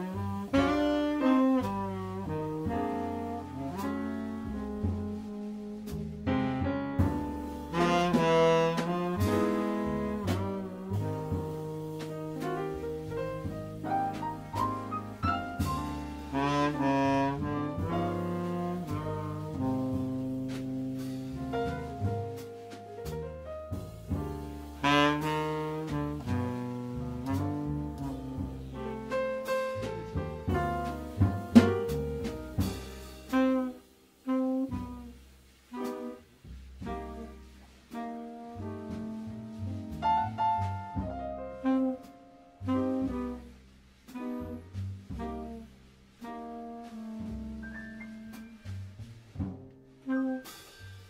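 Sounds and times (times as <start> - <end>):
tenor saxophone: 0.0 - 6.6, 7.7 - 13.5, 15.6 - 22.7, 24.7 - 29.2, 32.2 - 35.2, 40.6 - 49.0, 50.0 - 50.6
double bass: 0.0 - 51.0
piano: 0.0 - 51.0
soft drums: 0.0 - 51.0.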